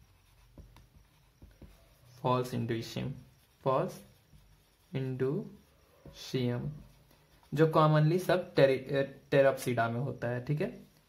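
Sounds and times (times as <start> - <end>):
marker writing on whiteboard: 0.0 - 8.6.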